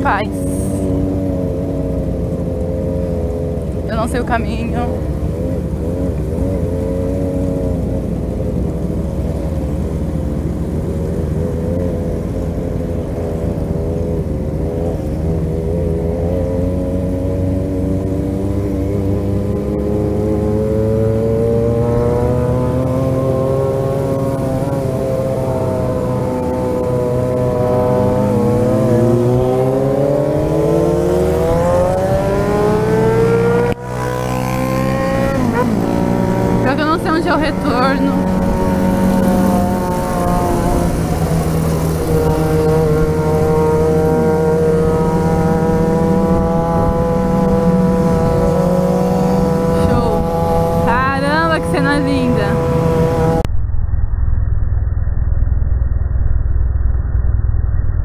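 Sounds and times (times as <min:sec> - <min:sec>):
motorcycle engine accelerating: 0:00.0 - 0:58.0.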